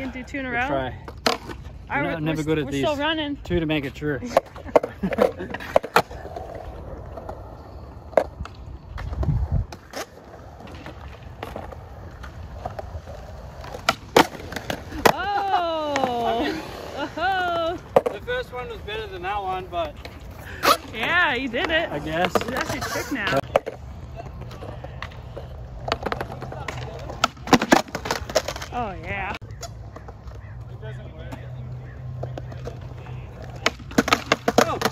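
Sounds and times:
skateboard wheels rolling on concrete: 0:00.0 - 0:34.9
skateboard clacks: 0:04.2 - 0:30.7, 0:31.3 - 0:34.9.

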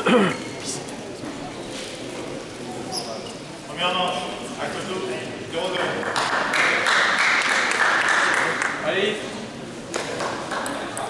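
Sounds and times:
crowd chatter: 0:00.0 - 0:11.0
applause: 0:05.8 - 0:08.8, 0:09.9 - 0:11.0.

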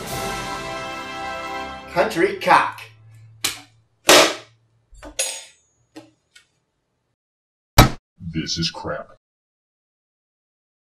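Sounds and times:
loud sharp smack: 0:03.5 - 0:04.5.

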